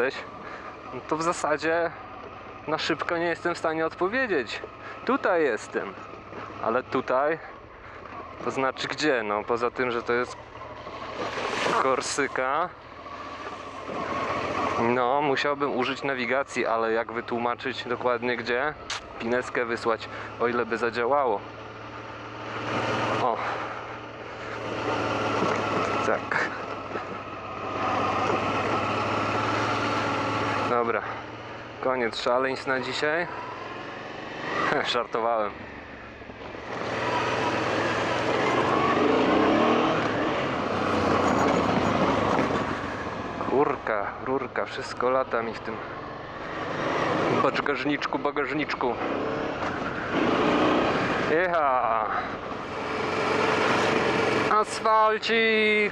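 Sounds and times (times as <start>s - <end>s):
wind: 0.0s - 55.9s
motorcycle engine running: 20.0s - 32.3s
tyres on gravel: 23.2s - 29.4s.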